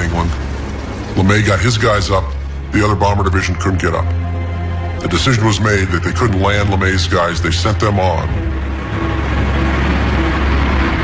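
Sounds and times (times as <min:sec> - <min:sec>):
propeller engines droning: 0:00.0 - 0:11.0.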